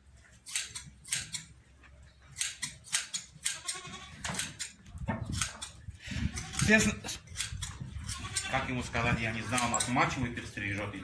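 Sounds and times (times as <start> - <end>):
shears snipping fleece: 0.4 - 1.5, 2.4 - 5.8, 6.6 - 8.5, 9.5 - 10.0
goats and sheep bleating: 3.5 - 4.4, 8.0 - 9.0.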